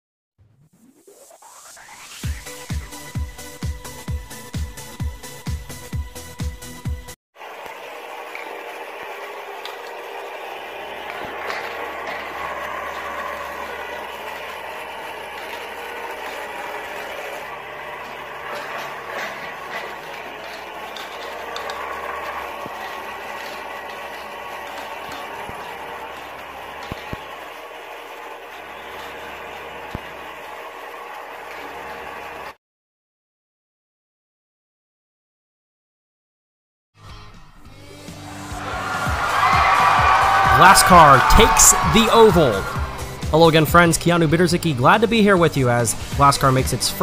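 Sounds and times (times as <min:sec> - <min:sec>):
electronic dance music: 0:00.8 - 0:06.2, 0:08.9 - 0:32.5, 0:38.3 - 0:47.0
toy race track whirring: 0:01.5 - 0:04.9, 0:07.4 - 0:32.6, 0:38.3 - 0:47.0.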